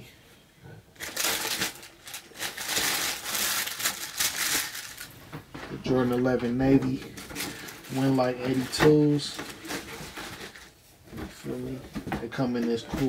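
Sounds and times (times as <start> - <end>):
tissue paper crinkling: 1.0 - 5.2, 7.2 - 10.8.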